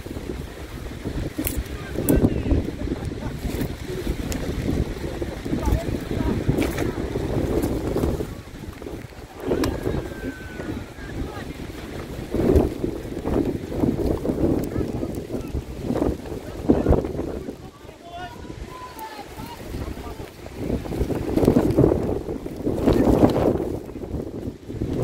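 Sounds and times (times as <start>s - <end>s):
wind buffeting microphone: 0.0s - 25.0s
distant shouts: 9.2s - 12.0s, 17.5s - 20.4s.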